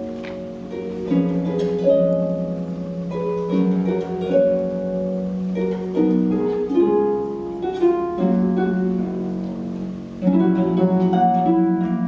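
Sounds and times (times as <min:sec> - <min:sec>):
harp playing slow piece: 0:00.0 - 0:12.0.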